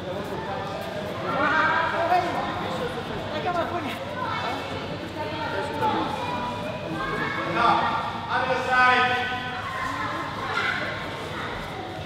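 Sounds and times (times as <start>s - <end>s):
people talking in a large hall: 0.0s - 12.0s.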